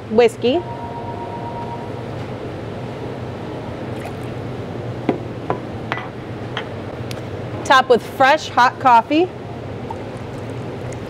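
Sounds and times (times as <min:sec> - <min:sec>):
low hum: 0:00.4 - 0:06.3.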